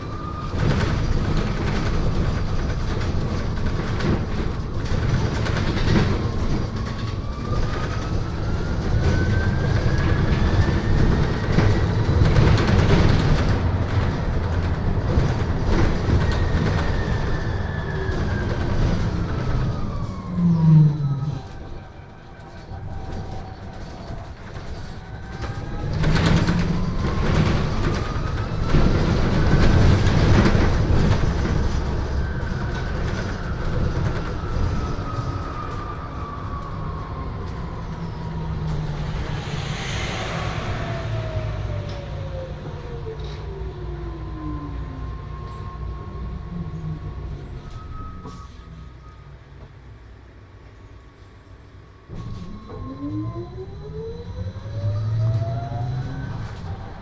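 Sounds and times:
electric bus drive whine: 0.0 - 57.0
road rumble: 0.0 - 57.0
short low sound: 38.0 - 43.7.

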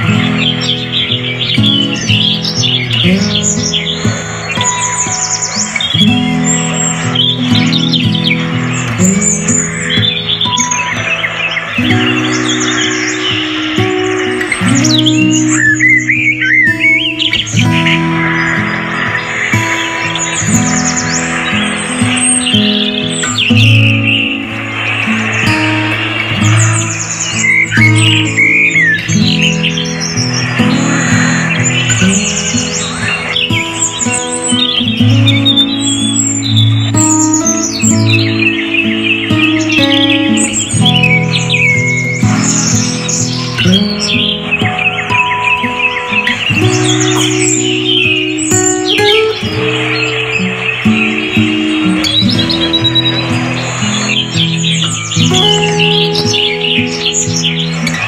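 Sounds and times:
birds chirping: 0.0 - 58.0
instrumental background music: 0.0 - 58.0.

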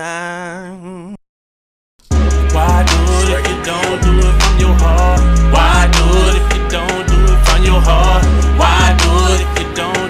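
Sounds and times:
hip hop beat with heavy bass: 2.0 - 10.0.

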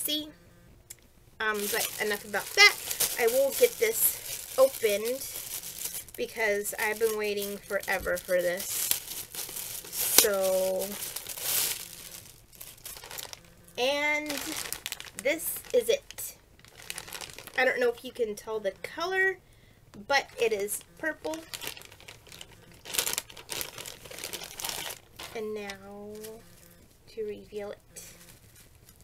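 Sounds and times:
plastic package crinkling: 1.4 - 18.2, 20.2 - 26.8, 28.0 - 29.0.

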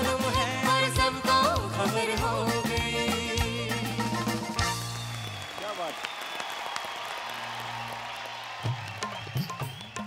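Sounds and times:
audience cheering and clapping: 4.7 - 10.0
dholak drum playing: 8.6 - 10.0.

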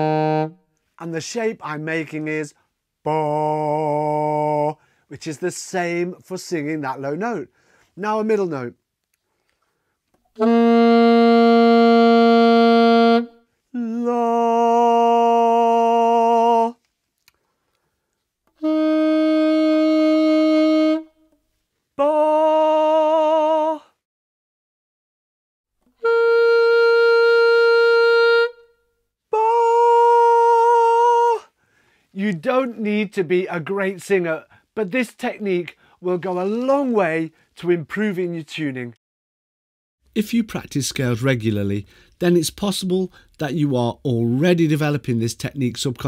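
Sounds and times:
man singing a note: 3.0 - 4.8, 13.7 - 16.8, 22.0 - 23.9, 29.3 - 31.5
alto saxophone held note: 18.6 - 21.1.

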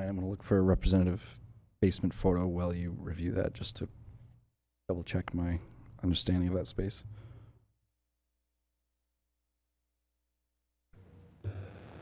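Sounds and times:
soft breath: 7.1 - 7.7.

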